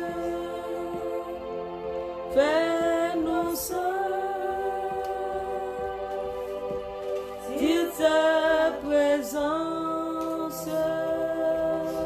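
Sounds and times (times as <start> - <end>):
woman singing: 0.0 - 1.6, 2.3 - 12.0
sustained backing chords: 0.0 - 12.0.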